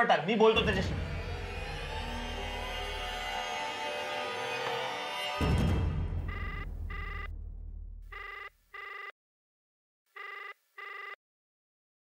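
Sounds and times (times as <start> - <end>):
low drone: 0.3 - 6.1
phone ringback tone: 6.2 - 7.3, 8.1 - 9.2, 10.2 - 11.2.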